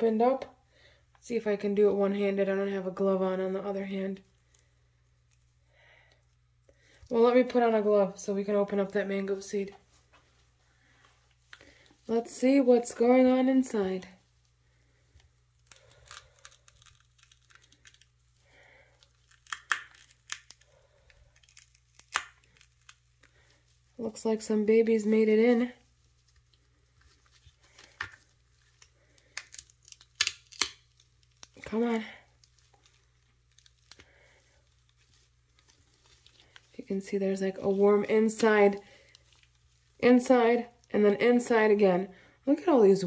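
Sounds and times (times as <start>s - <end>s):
fibrous husk tearing and crackling: 15.2s - 24.0s, 25.8s - 40.9s.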